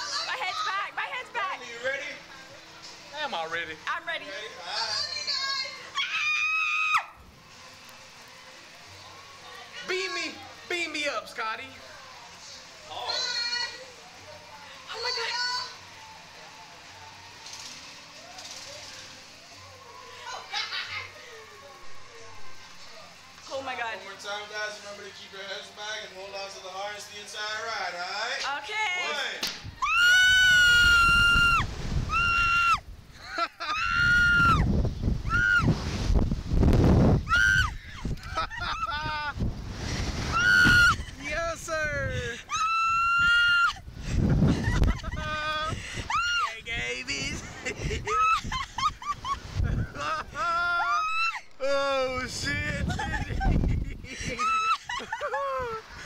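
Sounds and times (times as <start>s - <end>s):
riders screaming: 29.8s - 32.8s, 33.6s - 34.6s, 40.3s - 41.1s, 45.9s - 46.5s, 50.7s - 51.5s
rushing of ride motion: 33.9s - 42.5s
brief hiss: 35.1s - 37.2s, 39.4s - 41.1s.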